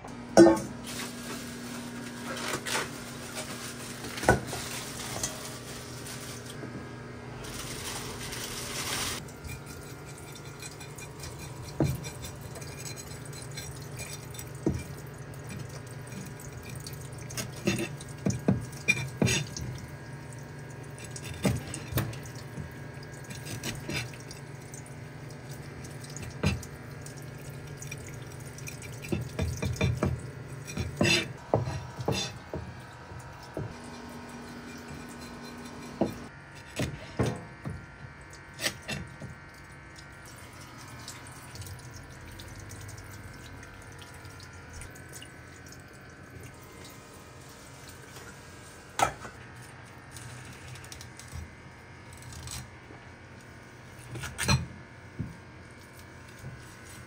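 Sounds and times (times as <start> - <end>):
tap water running: 7.4 - 36.3, 37.2 - 49.4.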